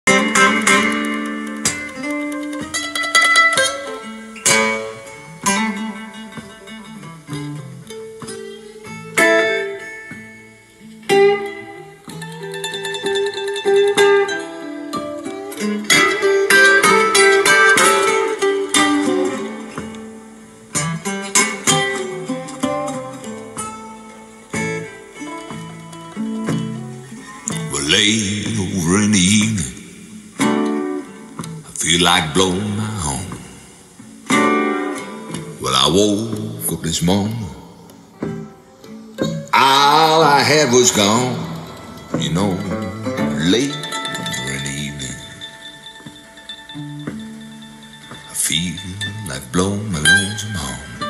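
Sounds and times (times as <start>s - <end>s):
blues guitar through speaker: 0.0s - 51.0s
person singing: 27.3s - 30.2s, 31.5s - 33.8s, 35.0s - 45.5s, 48.3s - 51.0s.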